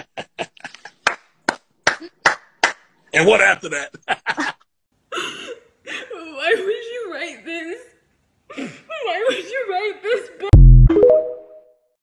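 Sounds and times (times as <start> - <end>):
person clapping hands: 1.0 - 2.8.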